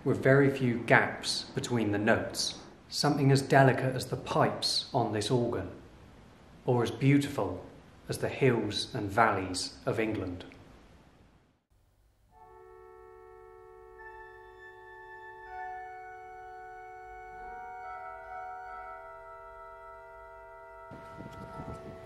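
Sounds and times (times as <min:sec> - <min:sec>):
pipe organ playing sustained chords: 0:12.4 - 0:22.0.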